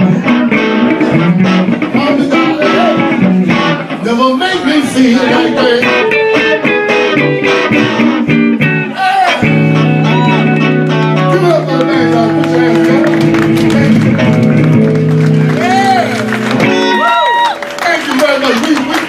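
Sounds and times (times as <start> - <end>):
electric guitars playing blues: 0.0 - 19.0.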